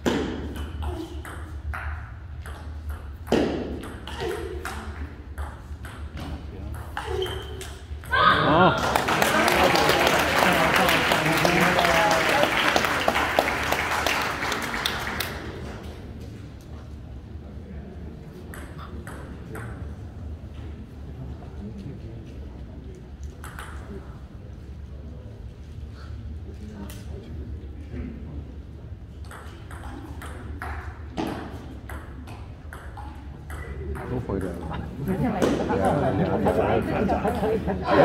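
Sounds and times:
table tennis ball bouncing: 0.0s - 7.8s, 18.5s - 19.9s, 23.4s - 24.0s, 29.2s - 34.2s.

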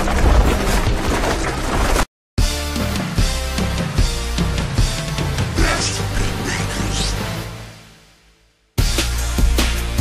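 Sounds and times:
film soundtrack music: 0.0s - 10.0s.

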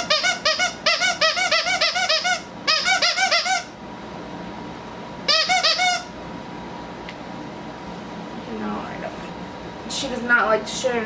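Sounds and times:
dog toy squeaking: 0.0s - 3.7s, 5.3s - 6.1s.

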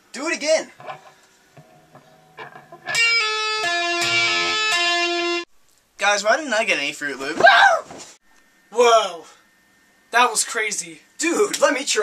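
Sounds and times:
electric guitar notes: 0.8s - 5.5s.

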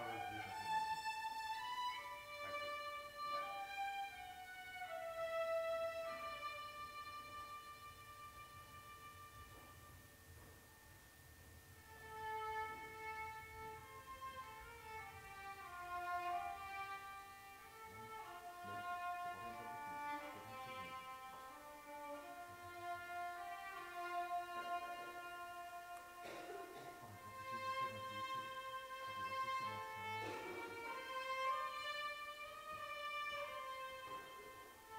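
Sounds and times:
solo violin slow melody: 0.0s - 10.8s, 11.8s - 34.9s.

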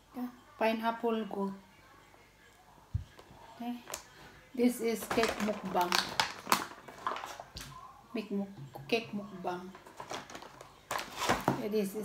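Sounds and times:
plastic food pack crackling: 3.7s - 4.2s, 4.9s - 7.8s, 9.6s - 11.6s.

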